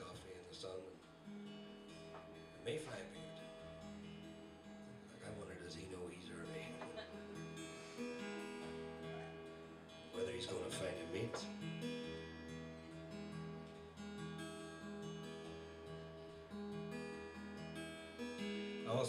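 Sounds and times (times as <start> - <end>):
acoustic guitar playing: 0.0 - 19.0.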